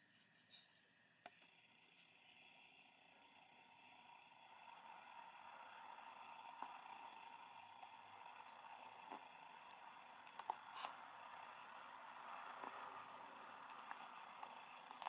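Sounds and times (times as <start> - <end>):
faint steady hum: 0.0 - 15.0
faint clicks: 9.0 - 10.9.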